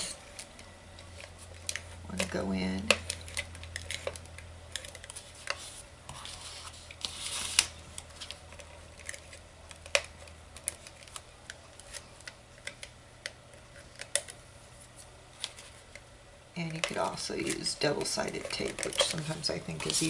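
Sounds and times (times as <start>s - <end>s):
paper rustle: 3.8s - 10.0s, 17.0s - 20.0s.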